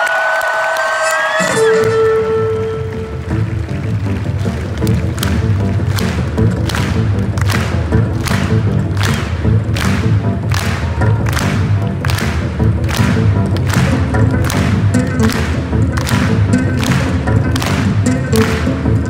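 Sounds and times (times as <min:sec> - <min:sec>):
amplified cellos playing rock: 0:01.0 - 0:19.0
drum kit beat: 0:05.0 - 0:19.0.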